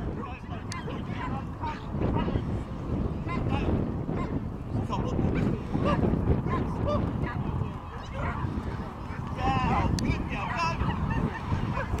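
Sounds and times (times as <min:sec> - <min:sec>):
dog barking and yipping: 0:00.7 - 0:02.4, 0:06.5 - 0:08.5, 0:09.1 - 0:12.0.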